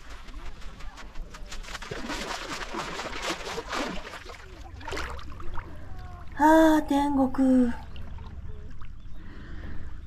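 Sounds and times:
seawater splashing around legs: 0.0s - 5.7s.

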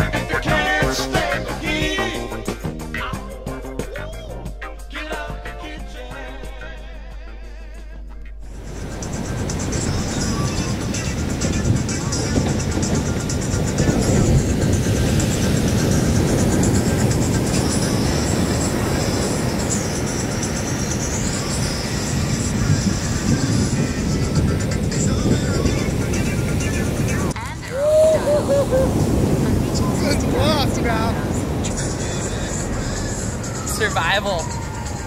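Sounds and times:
ocean waves breaking on rocks: 8.5s - 35.0s.

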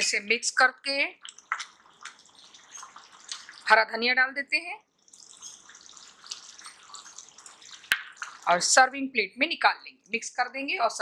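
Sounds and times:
small pops: 1.2s - 3.7s, 5.0s - 8.5s
gravy bubbling in a pan: 1.2s - 4.0s, 4.8s - 8.8s.

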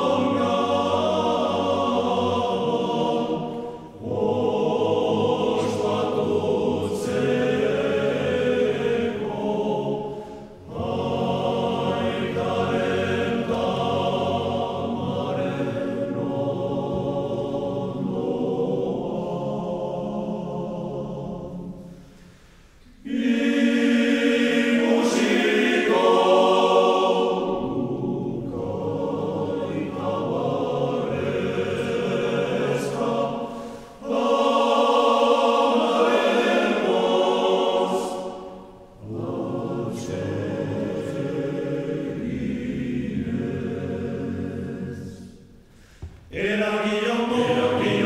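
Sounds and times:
men's choir singing a cappella: 0.0s - 48.0s.

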